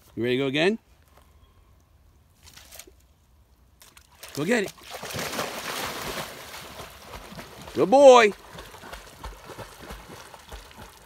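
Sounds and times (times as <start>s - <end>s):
dog splashing into pond: 3.8s - 11.0s
water sloshing: 3.8s - 11.0s.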